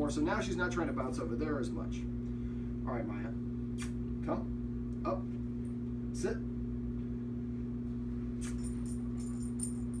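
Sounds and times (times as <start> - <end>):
steady low hum: 0.0 - 10.0
dog collar and leash jingling: 8.4 - 10.0.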